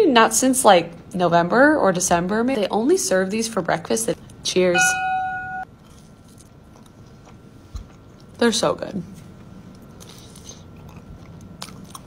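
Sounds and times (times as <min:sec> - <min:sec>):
steady electronic tone: 0:04.8 - 0:05.6.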